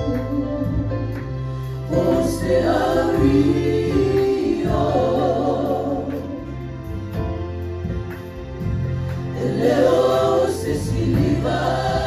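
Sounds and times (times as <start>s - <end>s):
group singing gospel song: 0.0s - 7.4s, 8.7s - 12.0s
band of keyboard guitars and bass: 0.0s - 12.0s.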